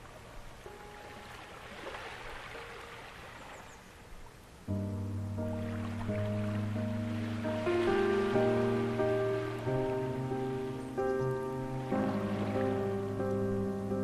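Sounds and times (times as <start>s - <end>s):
ocean waves: 0.0s - 14.0s
soft ambient piano chords: 0.0s - 14.0s.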